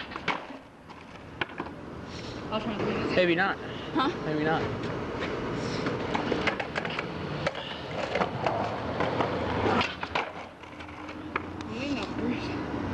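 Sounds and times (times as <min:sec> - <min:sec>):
skateboard clacks and knocks: 0:00.0 - 0:01.8, 0:06.1 - 0:11.6
skateboard wheels rolling on asphalt: 0:00.0 - 0:02.0, 0:04.2 - 0:12.9.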